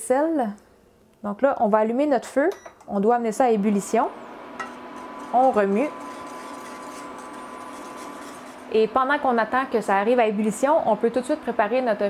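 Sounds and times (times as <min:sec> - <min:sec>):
induction cooktop electrical hum: 0:00.0 - 0:12.0
whisk swishing in saucepan: 0:04.6 - 0:08.8.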